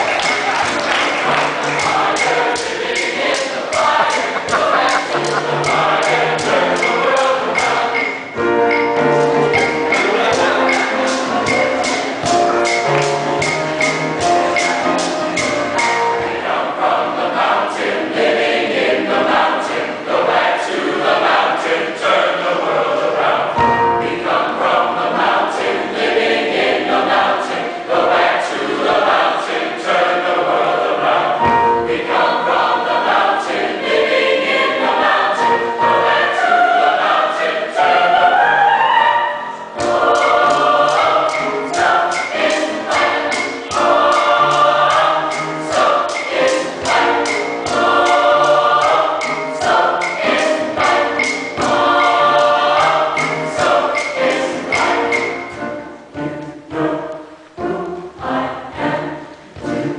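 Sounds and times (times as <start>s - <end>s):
percussive beat: 0.0s - 16.4s, 39.8s - 55.8s
mixed choir singing: 0.0s - 59.9s.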